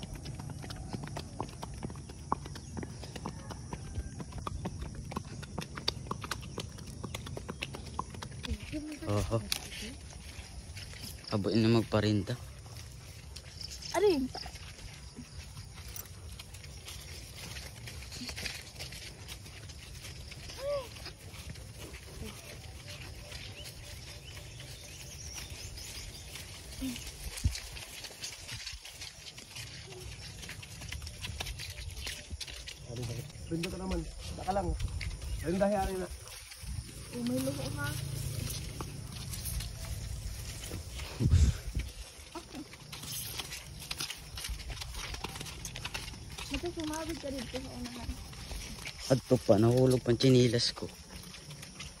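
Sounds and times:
horse steps through grass: 15.8 - 52.0.

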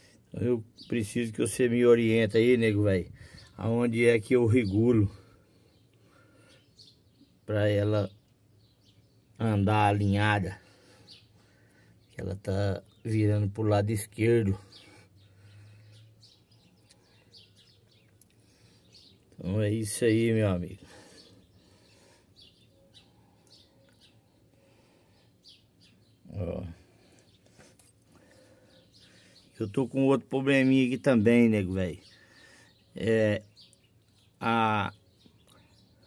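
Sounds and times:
faint high bird chirps: 14.5 - 36.0.

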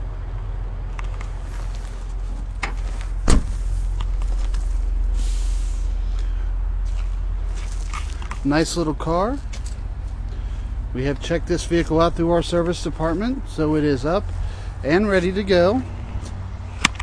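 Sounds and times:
steady low rumble: 0.0 - 17.0
car trunk lid slamming: 2.6 - 3.7.

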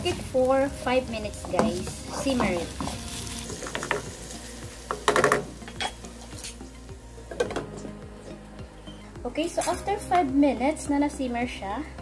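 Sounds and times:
chicken sizzling in a wok: 0.0 - 7.6
spatula stirring: 1.4 - 6.7.

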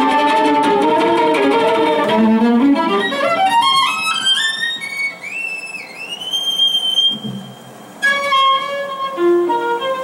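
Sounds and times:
violin playing high sliding note: 0.0 - 10.0.

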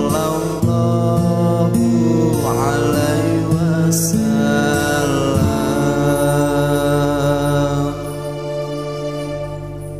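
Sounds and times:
man singing devotional song: 0.0 - 8.6
musical accompaniment: 0.0 - 9.9.

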